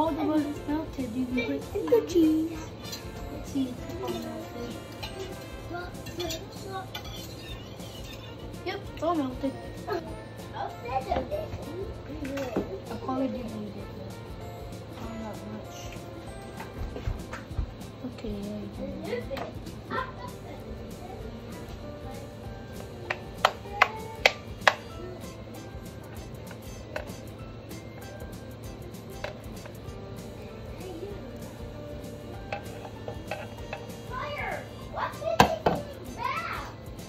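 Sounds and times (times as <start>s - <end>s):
background music: 0.0s - 37.0s.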